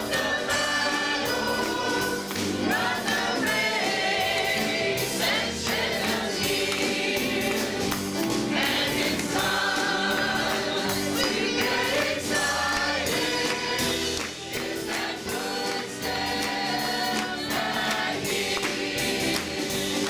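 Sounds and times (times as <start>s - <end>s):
choir singing gospel song: 0.0s - 20.0s.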